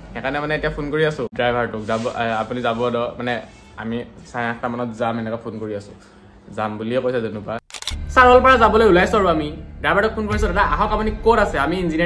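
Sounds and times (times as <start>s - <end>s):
man speaking: 6.6s - 12.0s
camera shutter click: 7.7s - 8.0s.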